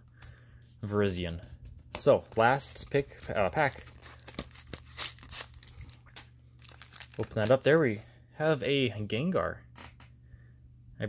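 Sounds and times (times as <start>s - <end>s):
foil pack crinkling: 2.0s - 8.0s
plastic wrapper tearing: 2.2s - 7.8s.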